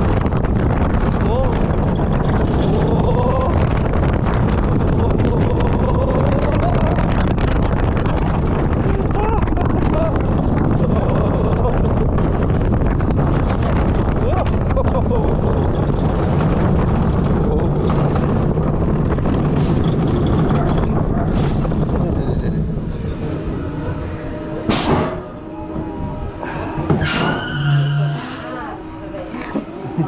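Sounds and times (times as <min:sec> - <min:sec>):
roller coaster rumbling on track: 0:00.0 - 0:30.0.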